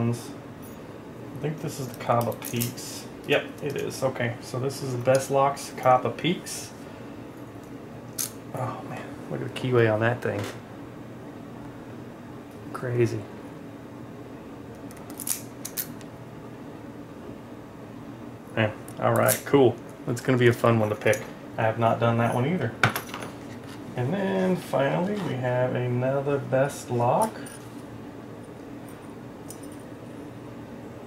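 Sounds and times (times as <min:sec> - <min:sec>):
steady low hum: 0:00.0 - 0:31.0
metal keys clicking and scraping: 0:01.8 - 0:02.8, 0:14.9 - 0:16.0, 0:28.8 - 0:29.9
metallic clicks of keys: 0:29.5 - 0:29.9.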